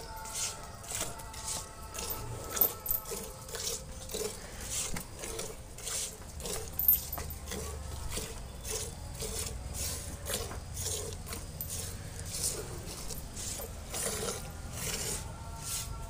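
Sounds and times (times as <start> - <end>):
milk squirting into steel bucket: 0.3 - 15.2.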